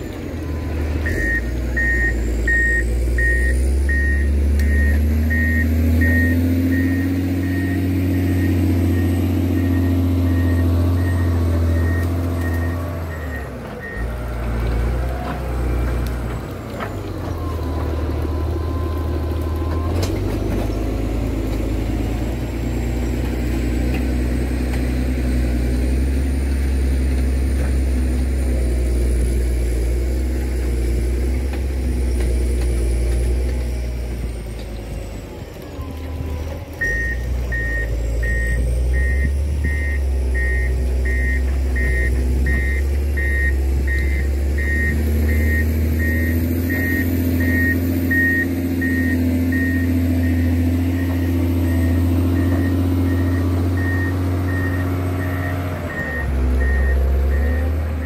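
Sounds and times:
diesel engine running: 0:00.0 - 0:58.0
reversing alarm beeping: 0:00.4 - 0:14.1, 0:36.1 - 0:58.0.

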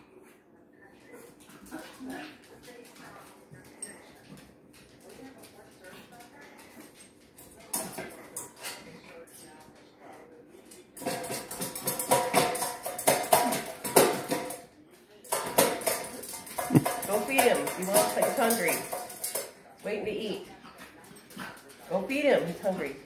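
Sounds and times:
metal dog bowl clanking: 0:11.0 - 0:14.6, 0:15.3 - 0:19.6.

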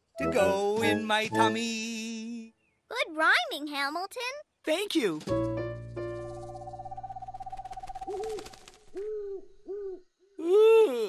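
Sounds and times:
cartoon owl hoots: 0:08.1 - 0:11.0.

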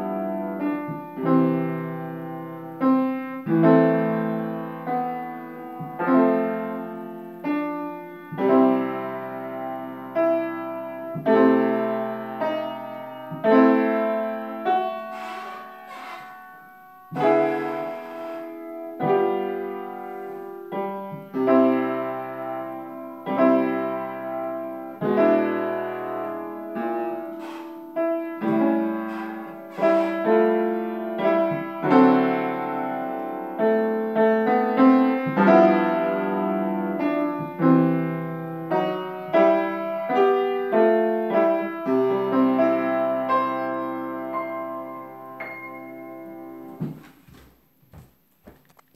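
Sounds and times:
slow solo piano piece: 0:00.0 - 0:47.0.

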